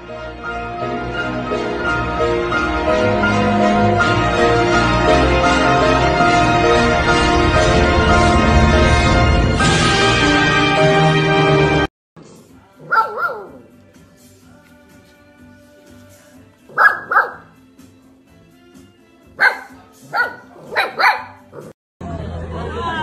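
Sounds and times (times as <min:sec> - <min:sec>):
puppies yipping and barking: 0:12.8 - 0:13.7, 0:16.7 - 0:17.5, 0:19.4 - 0:21.8.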